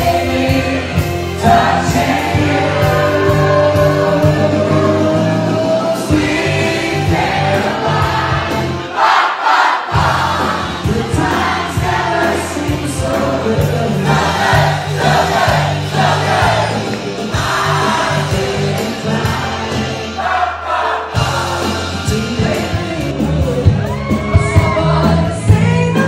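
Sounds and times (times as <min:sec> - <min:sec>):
crowd singing and shouting: 0:00.0 - 0:26.0
live band playing dance music: 0:00.0 - 0:26.0.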